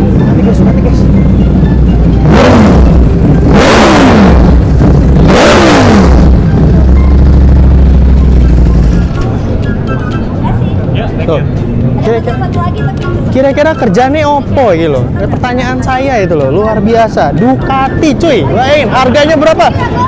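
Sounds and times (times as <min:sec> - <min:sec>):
motorcycle engine revving: 0:00.0 - 0:09.3
background music bass line: 0:00.0 - 0:20.0.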